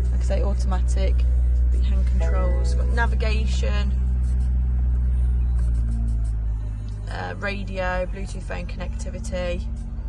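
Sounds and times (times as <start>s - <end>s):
bass-heavy music from car radio: 0.0s - 10.0s.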